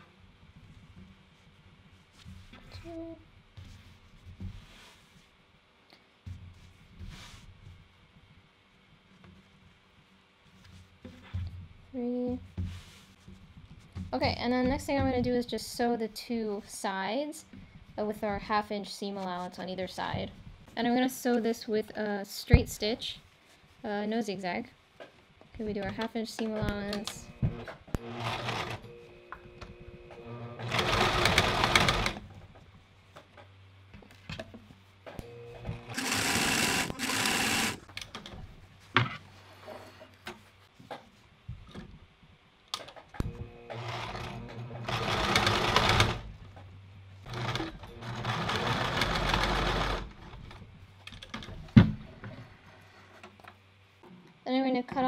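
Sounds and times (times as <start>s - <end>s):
sewing machine stitching: 27.0s - 29.0s, 30.2s - 32.2s, 35.7s - 37.8s, 43.4s - 46.2s, 47.3s - 50.3s.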